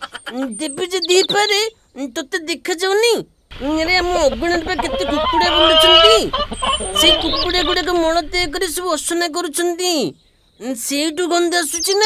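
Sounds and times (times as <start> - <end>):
hens clucking: 0.0 - 1.6, 3.5 - 9.1.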